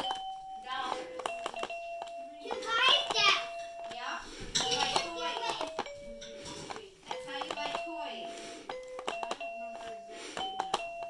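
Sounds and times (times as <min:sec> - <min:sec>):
electronic toy notes: 0:00.0 - 0:11.0
toy key plastic click: 0:01.1 - 0:03.2, 0:04.6 - 0:07.9, 0:08.6 - 0:11.0.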